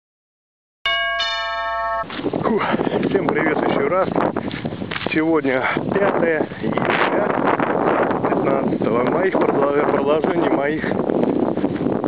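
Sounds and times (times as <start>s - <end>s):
electronic bell-like chime chord: 0.9s - 2.2s.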